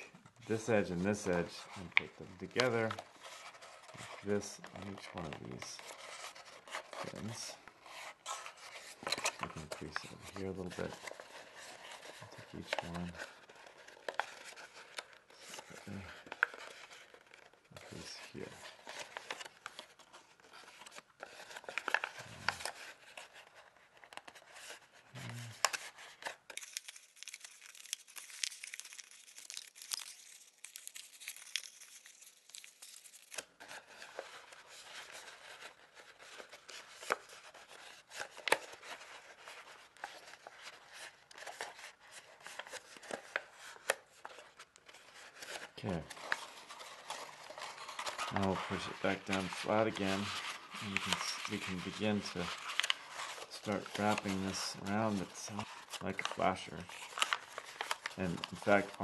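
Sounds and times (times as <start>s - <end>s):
paper crinkling and rustling: 0.0s - 59.0s.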